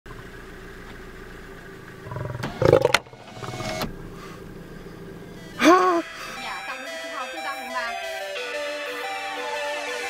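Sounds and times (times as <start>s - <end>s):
lion roaring: 2.0s - 3.8s.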